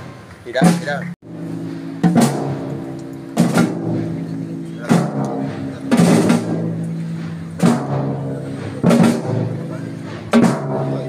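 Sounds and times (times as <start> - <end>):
procession band playing: 0.0 - 11.0.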